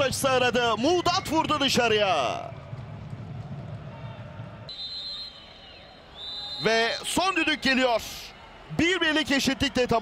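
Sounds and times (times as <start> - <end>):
low stadium noise: 0.0 - 10.0
referee's whistle long blast: 4.7 - 7.7.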